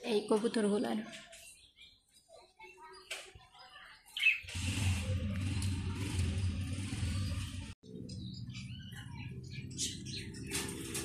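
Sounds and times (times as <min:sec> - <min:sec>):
pigeons chirping: 0:06.8 - 0:11.0.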